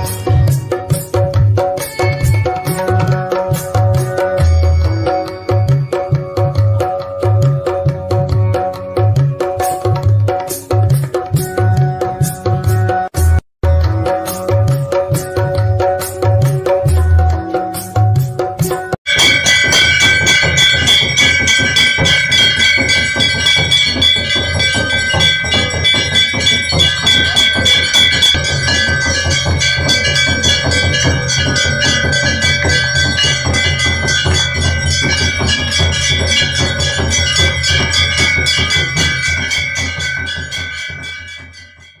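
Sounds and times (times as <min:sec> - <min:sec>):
bells rung rapidly: 0:00.0 - 0:42.0
low drumming: 0:19.1 - 0:41.8.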